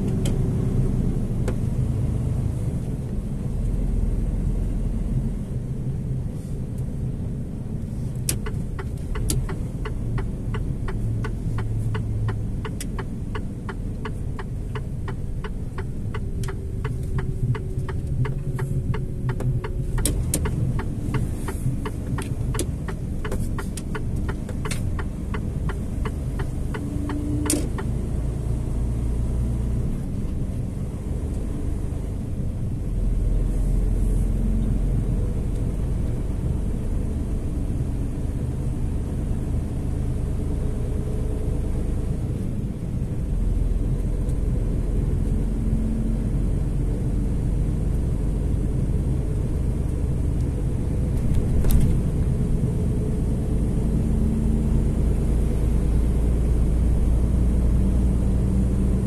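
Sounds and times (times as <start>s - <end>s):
vehicle engine and road noise: 0.0s - 59.0s
turn indicator ticking: 8.2s - 28.0s.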